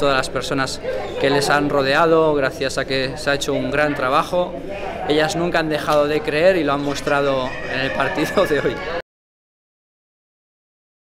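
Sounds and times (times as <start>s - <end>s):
speech: 0.0s - 9.0s.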